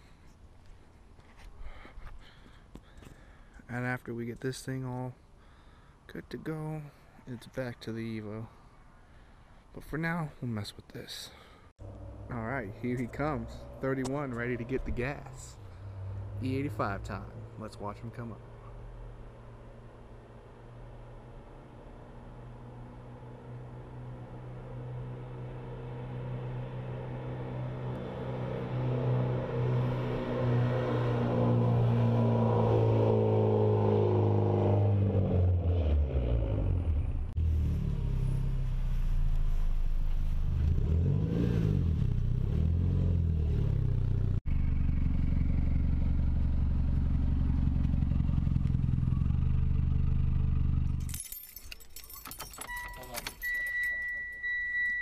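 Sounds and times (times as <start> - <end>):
car engine: 11.8 - 55.0
keys jingling: 51.0 - 54.5.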